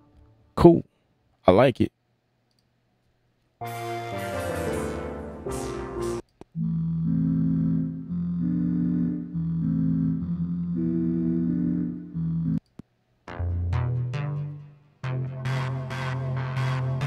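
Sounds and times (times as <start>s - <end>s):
bright synth chord with falling sweep: 3.6s - 12.6s
low sustained synth chords: 3.7s - 12.6s.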